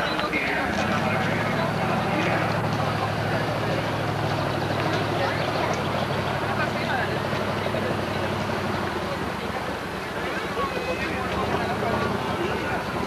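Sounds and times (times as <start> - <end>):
motorboat engine running: 0.0 - 13.0
people talking: 0.0 - 13.0.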